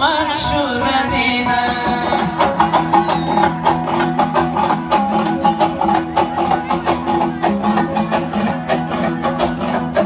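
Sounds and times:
live band music: 0:00.0 - 0:10.0
plucked string instrument strokes: 0:00.7 - 0:10.0.

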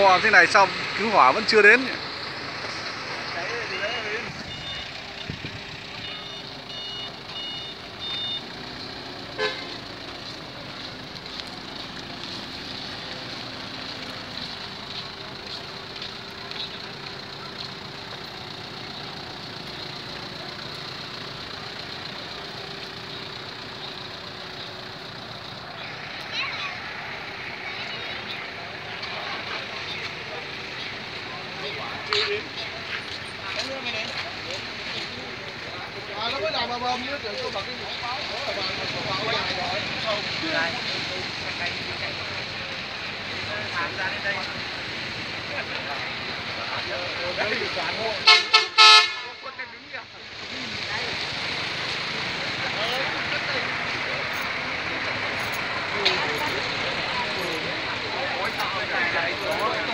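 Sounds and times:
crowd voices: 0:00.0 - 0:59.9
traffic: 0:00.0 - 0:59.9
short high beeps: 0:04.4 - 0:08.5.

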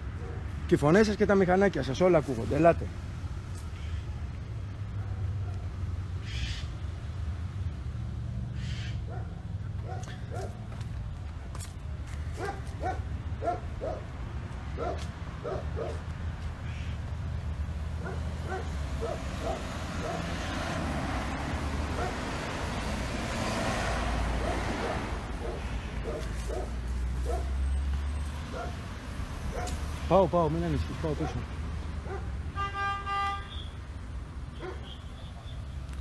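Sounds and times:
dog barking: 0:00.2 - 0:00.5, 0:04.9 - 0:05.7, 0:09.1 - 0:10.6, 0:12.4 - 0:14.1, 0:14.8 - 0:16.0, 0:18.0 - 0:20.4, 0:21.9 - 0:22.3, 0:24.4 - 0:27.6, 0:28.5 - 0:28.8, 0:29.5 - 0:29.8, 0:31.2 - 0:31.4, 0:32.0 - 0:32.4, 0:34.6 - 0:35.0.

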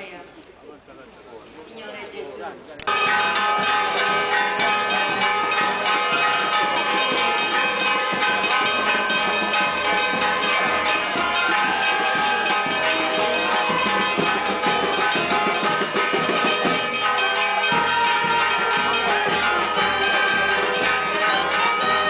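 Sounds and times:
church bells ringing: 0:02.9 - 0:22.0.

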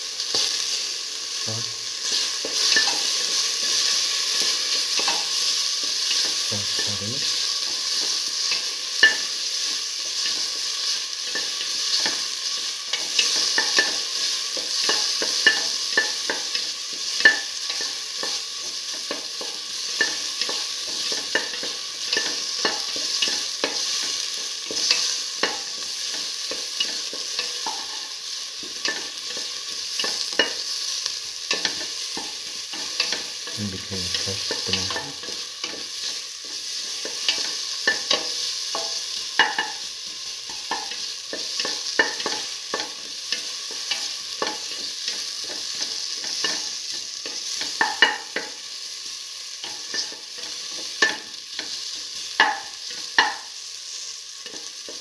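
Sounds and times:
vegetables sizzling in hot oil: 0:00.0 - 0:55.0.

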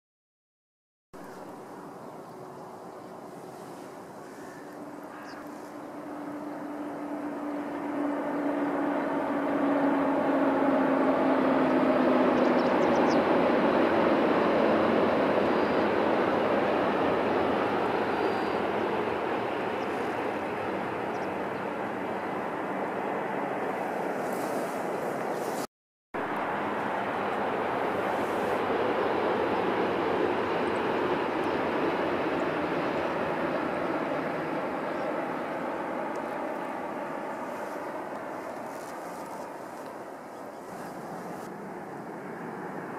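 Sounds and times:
high-speed train passing: 0:01.3 - 0:42.9.

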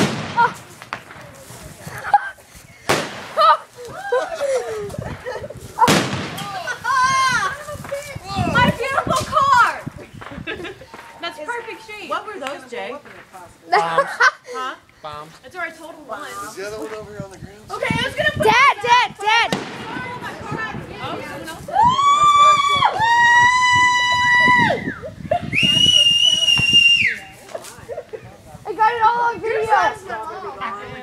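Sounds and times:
firework bang: 0:00.0 - 0:01.5, 0:02.9 - 0:03.4, 0:05.8 - 0:06.8, 0:19.5 - 0:21.4
faint pops and crackles: 0:00.0 - 0:04.0, 0:04.9 - 0:11.2.

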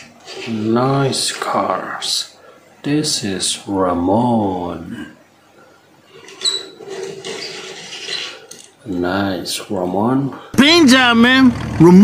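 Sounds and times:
toy car wheels rolling: 0:06.2 - 0:08.7.

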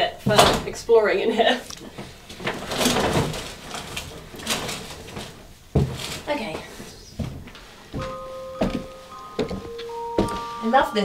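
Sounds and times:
footsteps on wooden staircase: 0:05.7 - 0:10.7.

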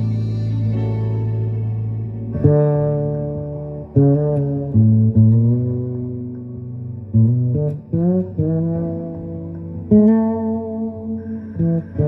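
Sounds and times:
fretless bass melody: 0:00.0 - 0:12.0.

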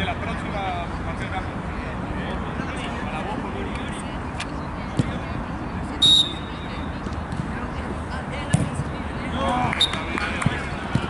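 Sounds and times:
referee's whistle blast: 0:06.0 - 0:06.5.

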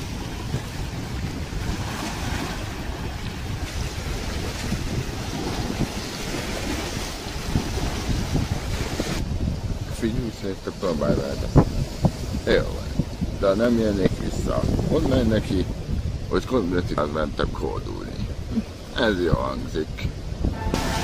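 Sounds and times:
choppy lake water: 0:00.0 - 0:21.0
wind buffeting microphone: 0:00.0 - 0:21.0.

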